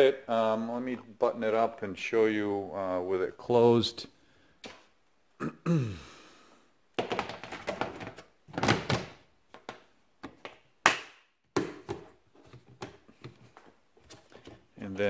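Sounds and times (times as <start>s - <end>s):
plastic lid thunks and clicks: 7.0s - 10.6s.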